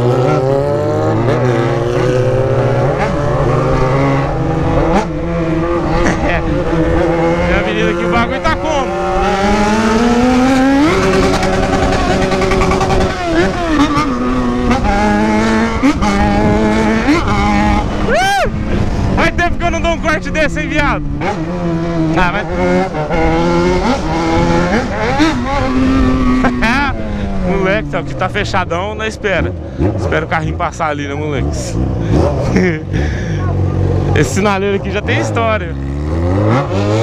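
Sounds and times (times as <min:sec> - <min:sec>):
motorcycle engine accelerating: 0:00.0 - 0:37.0.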